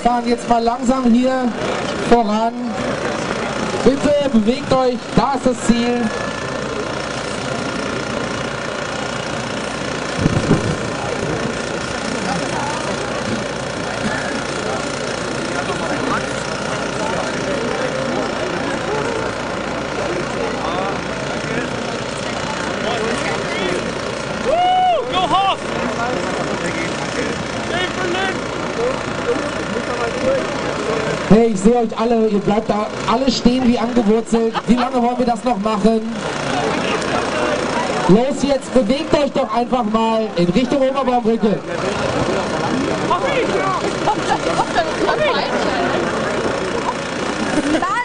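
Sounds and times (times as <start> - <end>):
crowd talking: 0.0 - 48.0
vehicle engine idling: 0.0 - 48.0.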